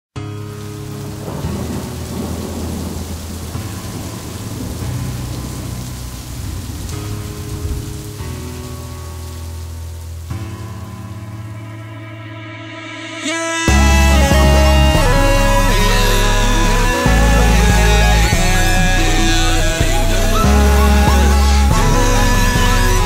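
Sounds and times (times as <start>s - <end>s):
low synth chords: 0.2s - 23.0s
heavy rain: 0.3s - 11.6s, 13.6s - 23.0s
thunder: 1.0s - 8.0s.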